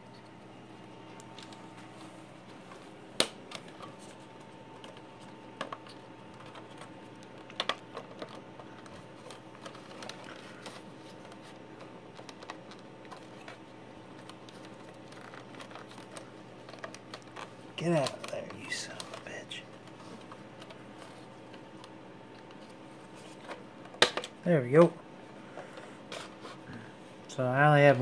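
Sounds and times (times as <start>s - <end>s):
faint steady hum: 0.0s - 28.0s.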